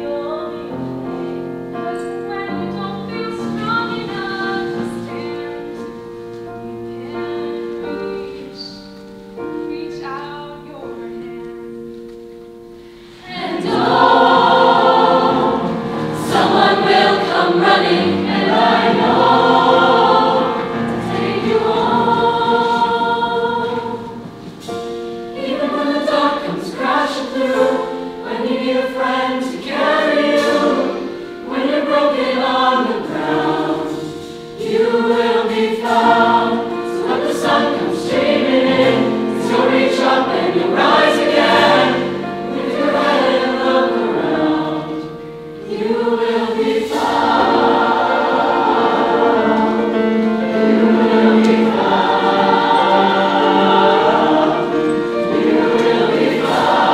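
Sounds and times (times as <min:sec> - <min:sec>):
mixed choir singing: 0:01.9 - 0:06.2, 0:12.9 - 0:56.9.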